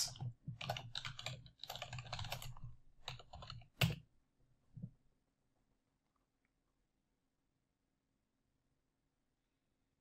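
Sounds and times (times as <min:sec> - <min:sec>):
computer keyboard typing: 0:00.0 - 0:04.1.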